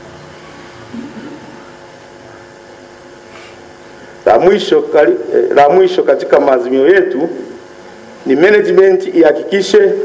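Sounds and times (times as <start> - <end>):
sound system hum and hiss: 0.0 - 10.0.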